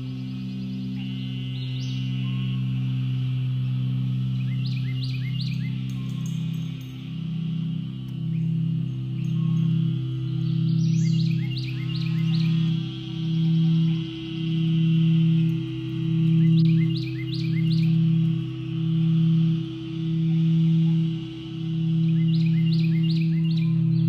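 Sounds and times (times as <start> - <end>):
crystal singing bowls ringing: 0.0 - 24.0.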